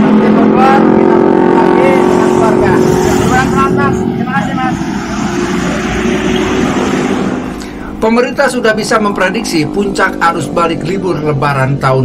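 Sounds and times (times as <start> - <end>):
highway traffic passing: 0.0 - 12.0.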